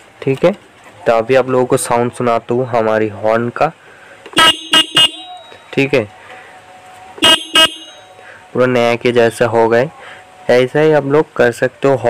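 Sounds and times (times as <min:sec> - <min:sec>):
scooter horn toots: 0:04.3 - 0:05.7, 0:07.2 - 0:08.2.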